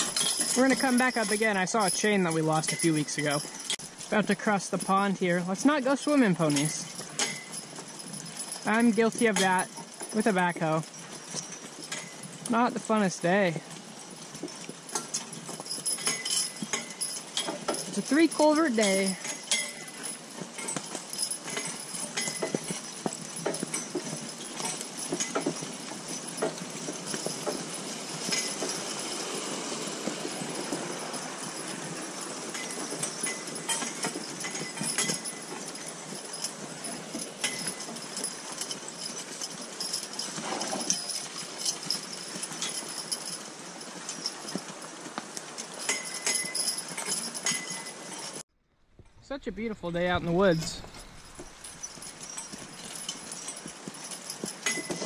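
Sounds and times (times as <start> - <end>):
harness hardware clinking: 0.0 - 55.0
horse hooves on wet dirt: 0.0 - 55.0.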